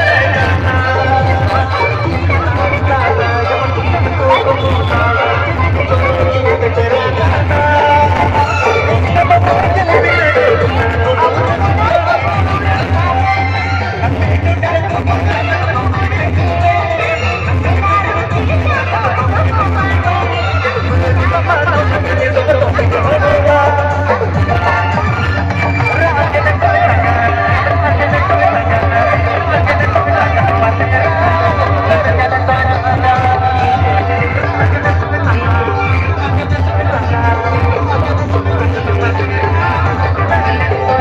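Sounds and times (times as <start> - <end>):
loud music with heavy bass: 0.0 - 41.0.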